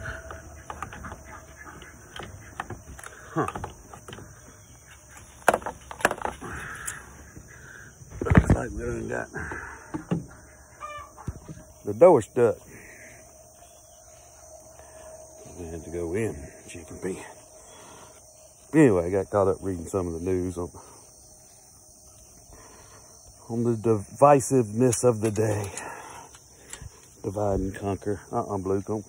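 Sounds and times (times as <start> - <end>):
chickens clucking and squawking: 0.0 - 15.1
high-pitched insect chorus: 0.0 - 29.0
high chicken call: 10.7 - 11.4.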